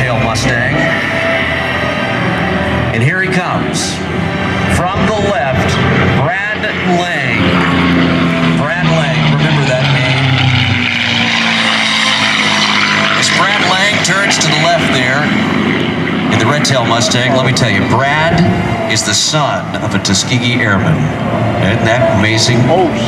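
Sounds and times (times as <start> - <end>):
propeller plane engine passing: 0.0 - 23.0.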